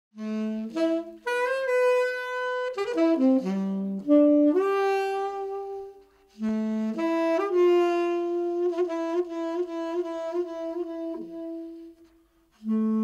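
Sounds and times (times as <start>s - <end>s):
solo saxophone jazz melody: 0.2s - 13.0s.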